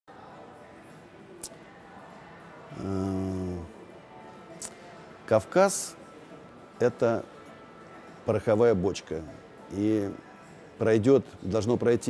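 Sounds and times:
man humming: 2.7s - 3.7s.

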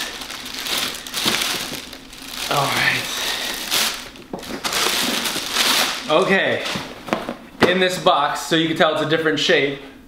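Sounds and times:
plastic bag crinkling: 0.0s - 7.0s.

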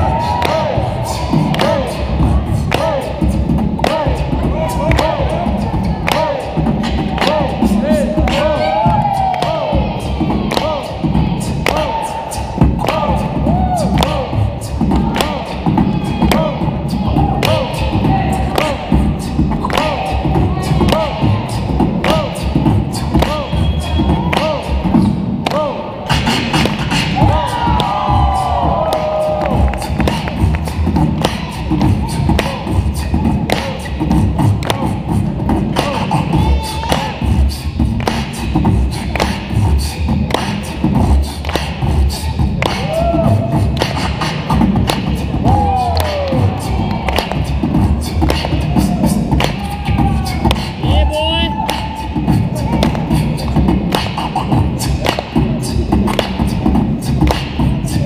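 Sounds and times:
hip-hop breakbeat music: 0.0s - 58.0s
vocal snatches: 0.0s - 58.0s.

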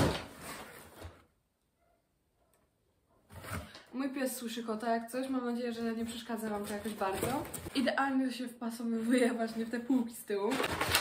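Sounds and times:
cardboard rustling: 0.0s - 1.3s, 6.1s - 7.8s, 10.5s - 11.0s.

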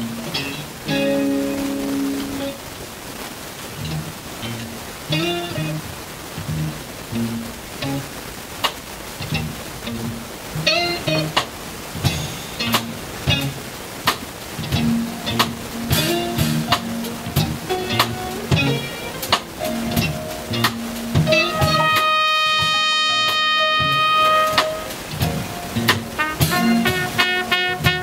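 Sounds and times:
small jazz band playing live: 0.0s - 2.6s, 9.3s - 28.0s
bass: 3.8s - 8.1s, 9.2s - 11.4s, 12.0s - 13.7s, 14.6s - 19.0s, 19.7s - 22.0s, 25.2s - 27.2s
drum hits: 14.8s - 28.0s
trumpet long note: 21.3s - 25.4s, 26.2s - 28.0s.

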